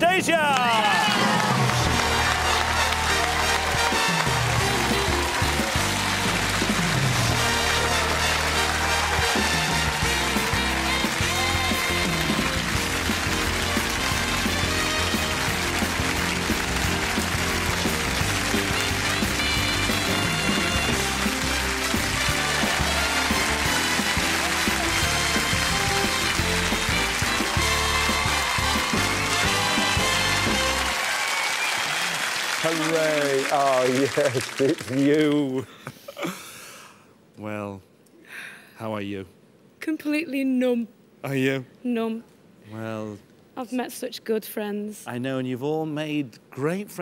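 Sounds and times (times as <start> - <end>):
audience applauding and cheering: 0.0 - 35.6
loud music with bass line: 3.8 - 30.8.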